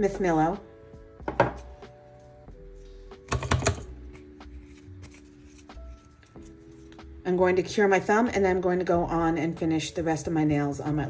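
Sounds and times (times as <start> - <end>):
fingernails tapping hard objects: 3.3 - 3.9.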